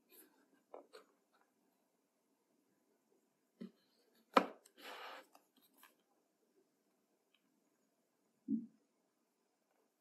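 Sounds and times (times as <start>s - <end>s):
papery scrape: 4.8s - 6.0s.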